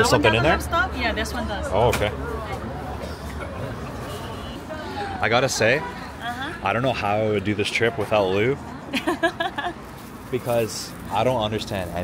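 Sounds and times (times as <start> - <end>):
faint voices: 0.0 - 12.0
low traffic rumble: 0.0 - 12.0.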